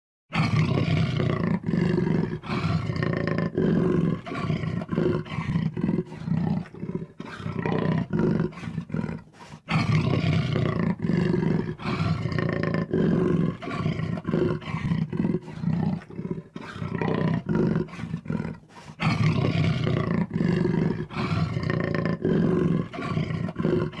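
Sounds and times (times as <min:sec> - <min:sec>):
big cat roaring: 0:00.3 - 0:24.0.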